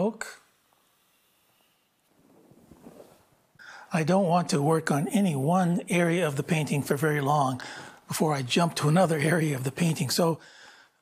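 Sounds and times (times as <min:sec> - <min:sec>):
soft rustle: 0:00.5 - 0:03.6.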